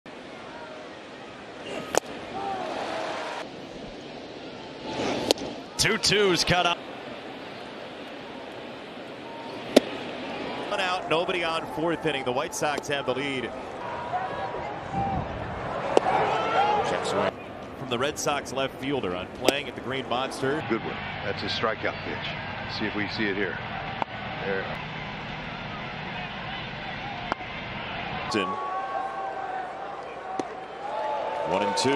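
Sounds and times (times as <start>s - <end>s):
ballpark crowd noise: 0.1s - 31.9s
sharp crack of baseball: 1.8s - 2.2s, 5.0s - 5.6s, 9.6s - 10.1s, 15.9s - 16.2s, 30.3s - 30.6s.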